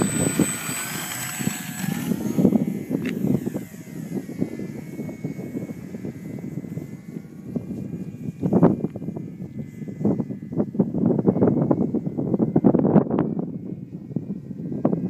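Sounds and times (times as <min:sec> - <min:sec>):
model plane electric motor whining: 0:00.0 - 0:15.0
wind rumbling on microphone: 0:00.0 - 0:15.0.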